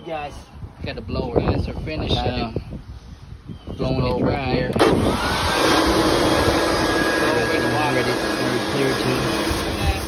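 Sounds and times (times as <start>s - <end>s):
air blower rushing with whine: 4.7s - 10.0s.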